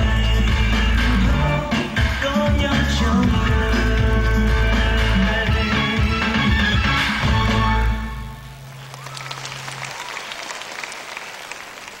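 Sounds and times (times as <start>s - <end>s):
live band music: 0.0s - 8.8s
audience applauding: 8.7s - 12.0s.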